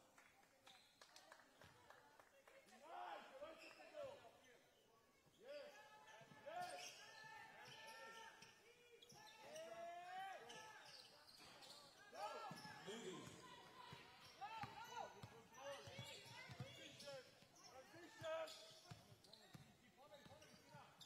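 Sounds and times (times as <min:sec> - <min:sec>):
sneakers squeaking: 0:05.6 - 0:21.0.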